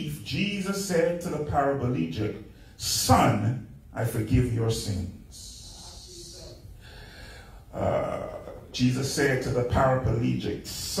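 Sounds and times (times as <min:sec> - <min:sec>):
man breathing into microphone: 0:06.7 - 0:07.7.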